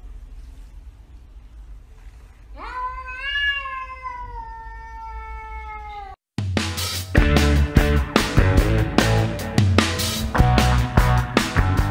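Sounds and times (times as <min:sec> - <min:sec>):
cat meowing: 0:02.5 - 0:06.2.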